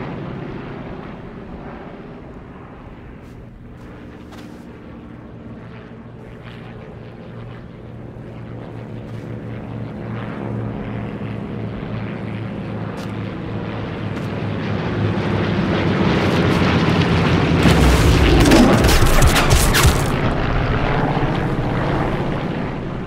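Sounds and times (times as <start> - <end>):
propeller plane engine droning: 0.0 - 23.0.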